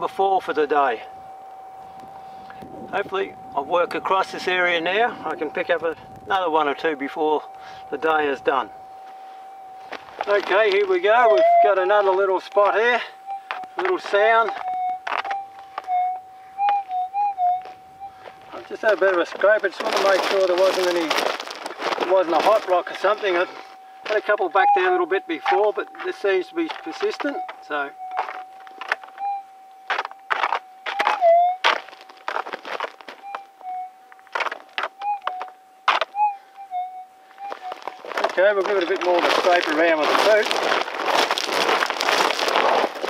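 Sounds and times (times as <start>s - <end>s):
metal detector tone: 0.0s - 21.1s, 22.0s - 40.4s
crunches on stony gravel: 0.0s - 29.2s, 29.8s - 36.2s, 37.4s - 43.0s
scuff on ground: 9.8s - 12.8s, 17.6s - 24.3s, 25.5s - 29.2s, 29.8s - 33.5s, 34.3s - 36.1s, 37.4s - 43.0s.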